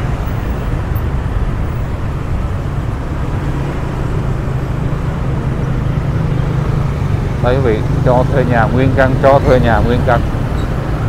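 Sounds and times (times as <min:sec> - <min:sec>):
street traffic engines hum: 0:00.0 - 0:11.0.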